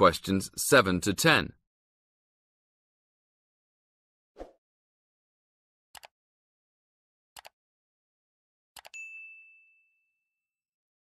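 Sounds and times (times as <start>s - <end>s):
bright ding: 9.0s - 10.2s.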